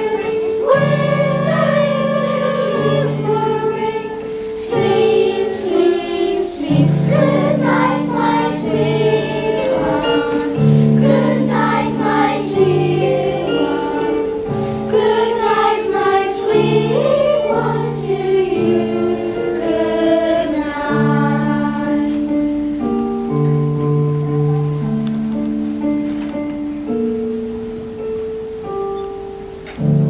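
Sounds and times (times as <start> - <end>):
children's choir singing: 0.0 - 23.5
keyboard playing low held notes: 0.0 - 30.0.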